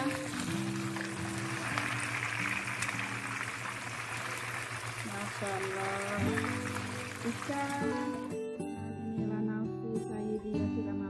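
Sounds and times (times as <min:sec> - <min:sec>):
background music with held notes: 0:00.0 - 0:05.0, 0:05.6 - 0:11.0
fish sizzling in hot oil: 0:00.0 - 0:08.3.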